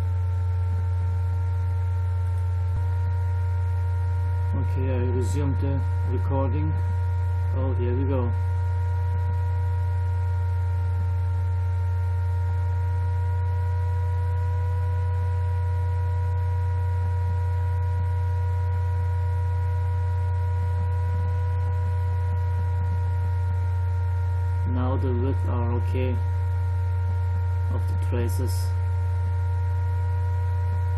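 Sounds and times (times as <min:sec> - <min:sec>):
laptop fan humming: 0:00.0 - 0:30.9
whining tones: 0:00.0 - 0:30.9.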